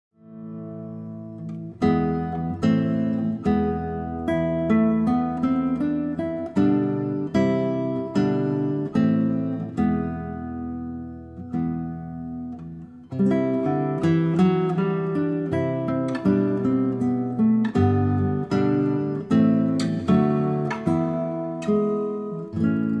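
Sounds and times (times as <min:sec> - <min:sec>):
acoustic guitar chords strummed: 0:00.2 - 0:23.0.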